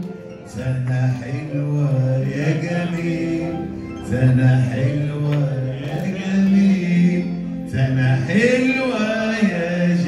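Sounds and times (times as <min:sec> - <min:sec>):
man singing long notes: 0:00.5 - 0:10.0.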